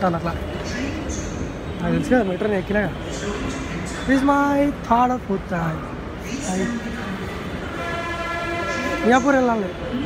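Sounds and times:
train horn long steady tone: 0:07.7 - 0:09.8.

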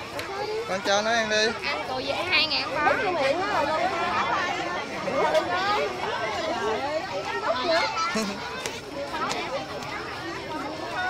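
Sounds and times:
murmur of overlapping chatter: 0:00.0 - 0:11.0.

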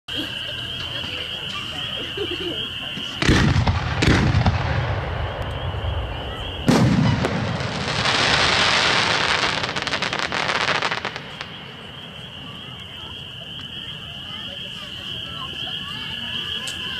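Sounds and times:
firework launch rumble: 0:02.9 - 0:12.5
firework bursting bang: 0:03.0 - 0:11.8.

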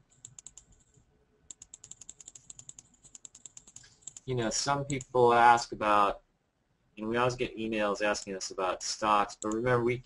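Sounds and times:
typing on computer keyboard: 0:00.1 - 0:00.9, 0:01.5 - 0:05.1.

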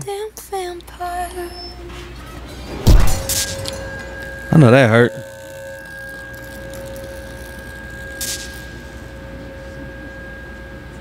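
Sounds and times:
steady ringing tones: 0:01.4 - 0:11.0.

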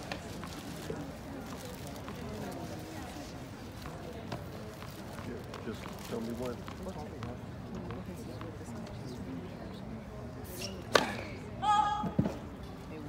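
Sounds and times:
spectators chattering: 0:00.0 - 0:13.0
tennis ball impact: 0:10.9 - 0:11.3.

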